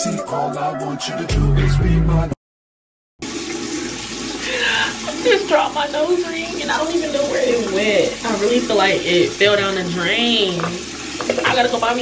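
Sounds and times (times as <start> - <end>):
sink tap running: 3.2 - 12.0.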